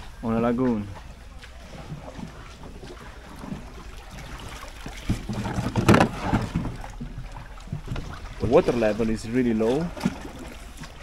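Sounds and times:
oar splashing in water: 0.0s - 11.0s
sharp knocks on wooden boat: 4.9s - 8.2s.

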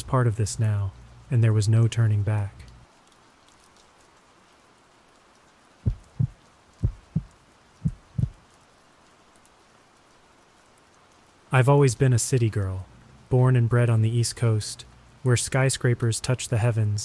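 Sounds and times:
faint rain: 0.0s - 17.0s
heartbeat double thumps: 5.8s - 8.4s.

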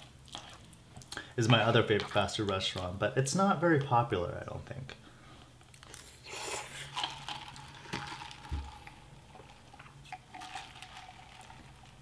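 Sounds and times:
person chewing food: 0.0s - 1.4s, 5.4s - 11.9s
faint steady hum: 0.0s - 12.0s.

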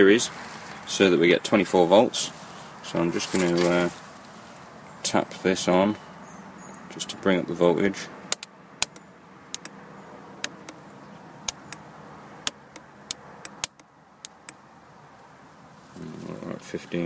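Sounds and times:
metal clamp clicking on battery terminal: 8.3s - 9.7s, 10.4s - 10.8s, 11.4s - 11.8s, 12.4s - 14.6s.

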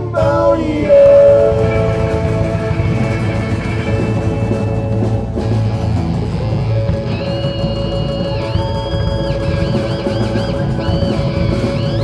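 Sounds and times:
bass: 0.0s - 12.0s
drums: 0.0s - 12.0s
guitars: 0.0s - 12.0s
sustained rock note: 0.0s - 12.0s.

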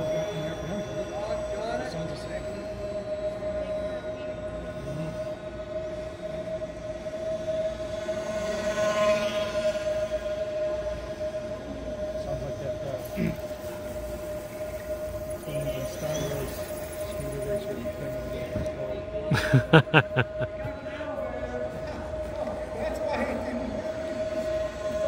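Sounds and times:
model plane motors whining: 0.0s - 19.3s.

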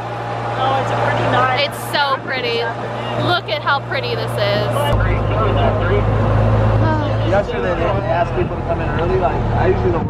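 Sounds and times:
car engine humming: 0.0s - 10.0s
voices: 0.2s - 10.0s.

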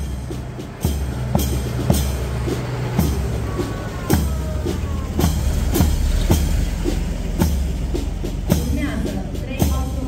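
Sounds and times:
marching band drum beats: 0.0s - 10.0s
truck diesel engine rumbling: 0.0s - 10.0s.

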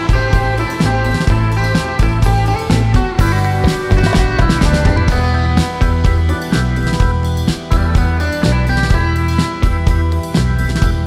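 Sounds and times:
congas: 3.4s - 6.4s
instrumental band playing: 3.4s - 7.8s.

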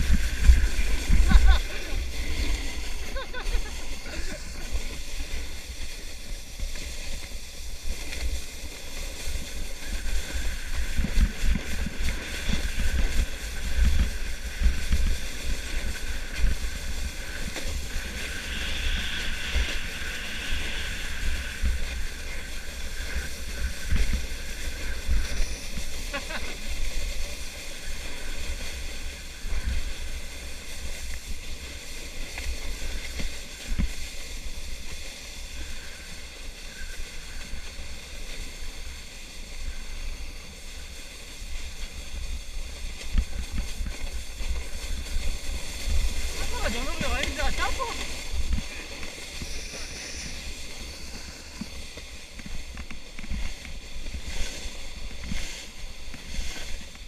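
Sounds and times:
sled scraping over snow: 0.0s - 57.0s
wind buffeting microphone: 0.0s - 57.0s.

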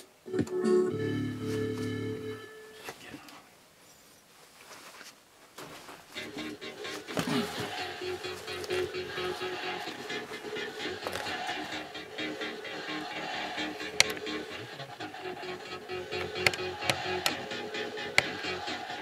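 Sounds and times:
song with steady beat: 6.2s - 19.0s
sharp clicks: 13.8s - 14.4s, 16.0s - 18.4s.

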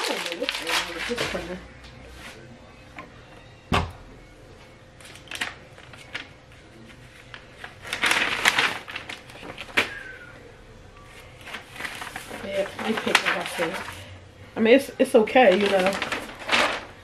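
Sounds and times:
paper crinkling and rustling: 0.0s - 1.6s, 5.0s - 10.2s, 11.1s - 14.1s, 15.1s - 17.0s.

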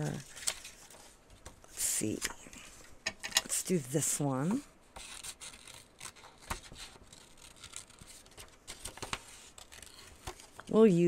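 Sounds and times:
scissors snipping paper: 5.0s - 10.7s.

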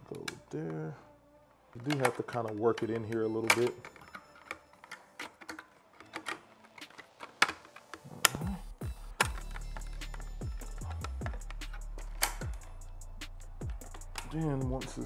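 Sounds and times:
hard plastic clicks and taps: 1.8s - 8.4s
music with deep bass beat: 8.4s - 15.0s.

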